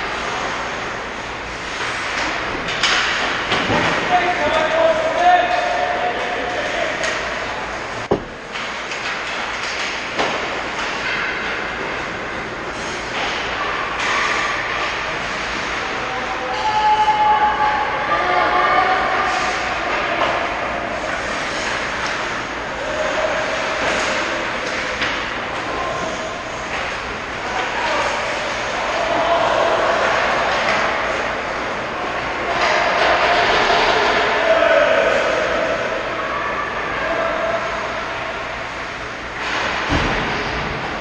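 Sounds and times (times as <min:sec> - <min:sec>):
distant shouting voices: 0:15.9 - 0:21.0, 0:32.0 - 0:38.6.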